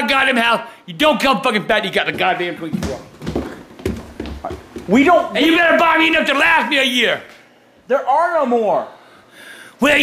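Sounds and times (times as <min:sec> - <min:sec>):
man shouting: 0:04.9 - 0:07.2.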